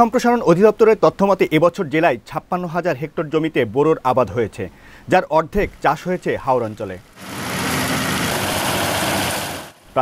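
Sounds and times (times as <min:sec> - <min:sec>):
small engine beating rapidly: 0:07.1 - 0:09.8
threshing drum rushing: 0:07.2 - 0:09.8.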